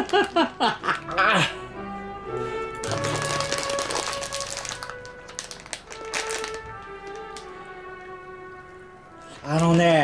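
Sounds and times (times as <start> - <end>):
plastic snack pouch crackling: 0.0 - 1.2, 2.8 - 7.6
background music held notes: 0.0 - 10.0.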